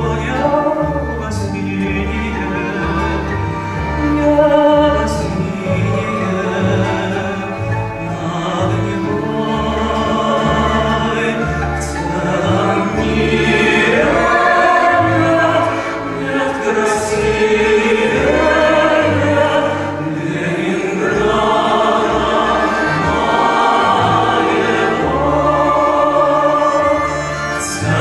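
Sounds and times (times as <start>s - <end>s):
low musical accompaniment: 0.0s - 28.0s
men singing together: 8.1s - 28.0s.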